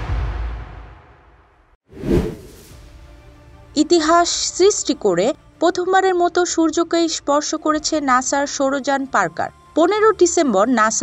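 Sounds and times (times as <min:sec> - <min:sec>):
whoosh transition effect: 0:01.9 - 0:02.9.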